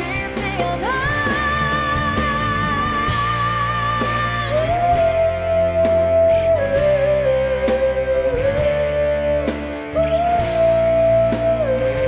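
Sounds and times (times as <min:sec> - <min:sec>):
bass: 0:00.0 - 0:12.0
drums: 0:00.0 - 0:12.0
lead guitar long notes: 0:00.0 - 0:12.0.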